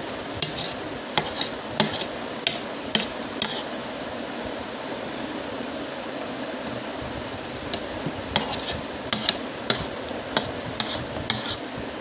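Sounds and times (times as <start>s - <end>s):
fork scraping plastic plate: 0.4s - 3.7s, 7.7s - 11.6s.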